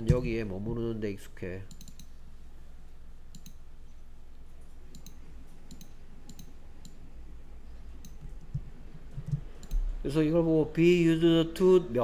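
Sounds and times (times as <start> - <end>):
faint low hum: 0.0 - 12.0
computer mouse clicking: 1.7 - 2.2, 3.3 - 3.6, 4.9 - 7.0, 8.0 - 9.9.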